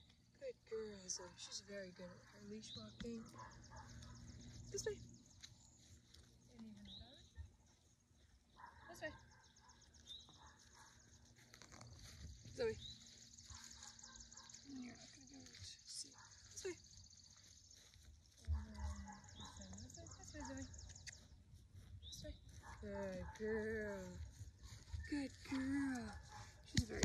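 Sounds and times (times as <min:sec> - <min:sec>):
chirping bird calls: 0:00.9 - 0:27.0.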